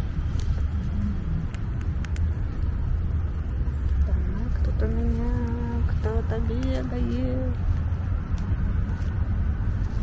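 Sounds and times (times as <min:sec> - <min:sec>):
low outdoor rumble: 0:00.0 - 0:10.0
faint clicks: 0:01.5 - 0:02.7.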